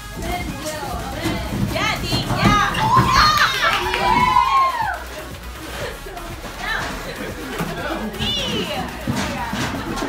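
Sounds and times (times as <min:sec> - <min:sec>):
women shouting and shrieking: 0:02.4 - 0:05.2.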